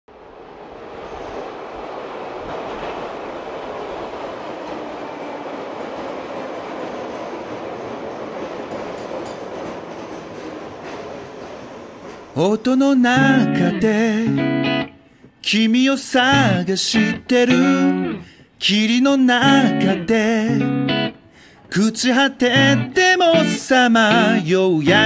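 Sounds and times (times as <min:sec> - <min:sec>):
subway train running: 0:00.1 - 0:25.0.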